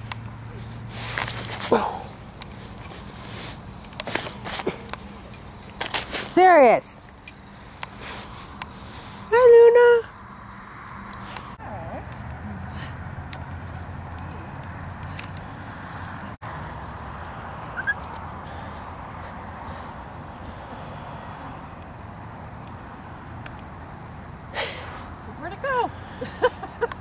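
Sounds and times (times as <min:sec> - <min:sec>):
dog whining: 0:11.6 - 0:15.2, 0:17.6 - 0:18.2.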